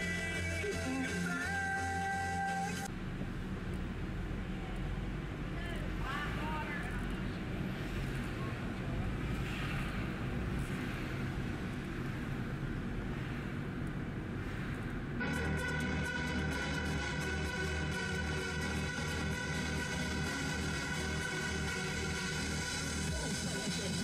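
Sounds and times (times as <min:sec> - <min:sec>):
road and engine rumble: 0:00.0 - 0:24.0.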